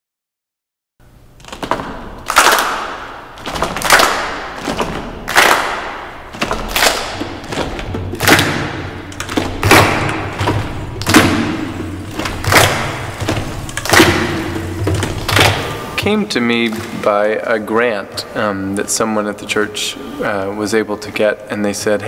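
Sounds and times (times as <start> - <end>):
children's body percussion claps: 2.2 - 15.9.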